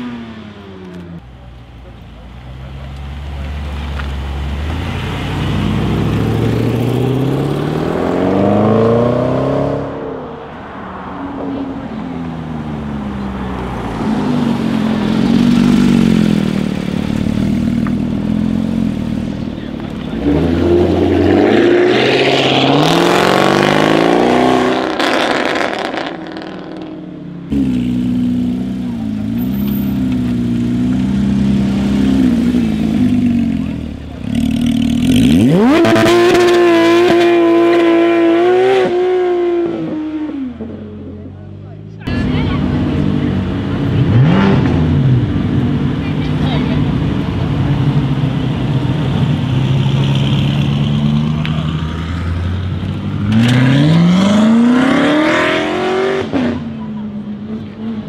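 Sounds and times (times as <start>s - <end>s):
sports car engines accelerating: 0.0s - 58.0s.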